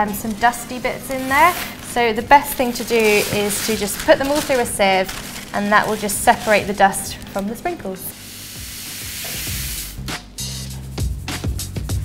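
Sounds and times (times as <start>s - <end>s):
sprinkles rattling in sieve: 0.0s - 7.2s
background music: 0.0s - 12.0s.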